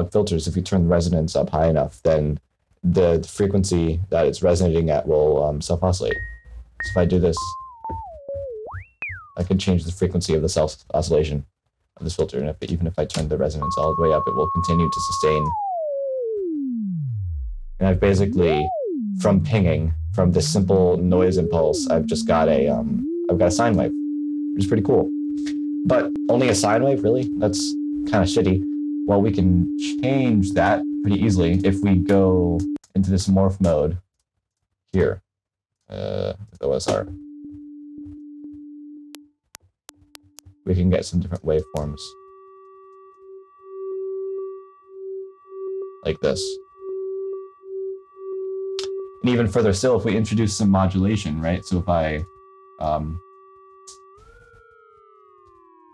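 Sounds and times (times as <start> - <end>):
sine tone gliding down: 0.0 - 11.4, 12.2 - 33.8, 35.9 - 39.2, 39.9 - 55.9.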